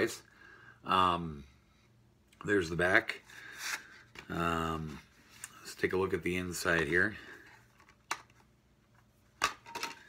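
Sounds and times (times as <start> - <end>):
plastic case clicks: 7.8 - 8.4.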